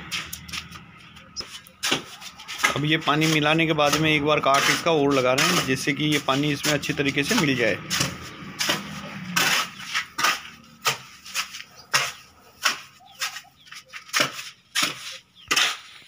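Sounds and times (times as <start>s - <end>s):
hoe scraping and chopping mortar: 0.0s - 16.0s.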